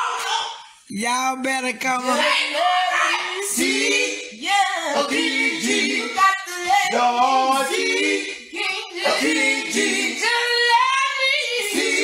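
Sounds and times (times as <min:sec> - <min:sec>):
vocal group singing a cappella: 0:01.6 - 0:12.0.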